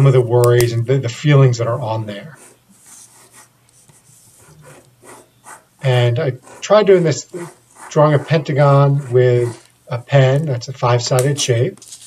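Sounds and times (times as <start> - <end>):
marker scratching on paper: 2.2 - 10.5.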